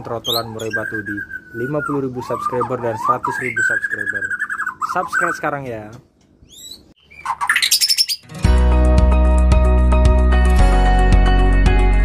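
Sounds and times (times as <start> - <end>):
bird chirping: 0.0 - 8.3.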